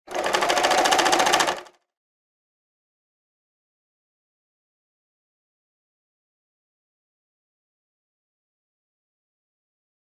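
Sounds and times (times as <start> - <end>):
sewing machine stitching: 0.0 - 1.8.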